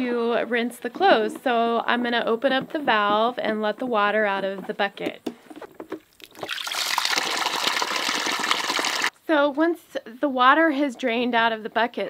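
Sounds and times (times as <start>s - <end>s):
water splashing onto gravel: 6.1s - 9.1s.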